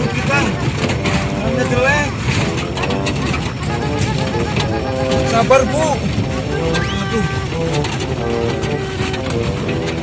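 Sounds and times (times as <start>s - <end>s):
car rumbling over rough road: 0.0s - 10.0s
knocks and rattles from bumps: 0.0s - 10.0s.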